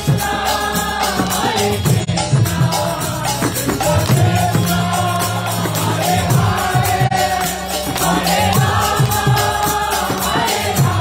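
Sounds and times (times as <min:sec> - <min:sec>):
drum beat: 0:00.0 - 0:11.0
hand percussion: 0:00.0 - 0:11.0
harmonium: 0:00.0 - 0:11.0
voices chanting together: 0:00.0 - 0:11.0.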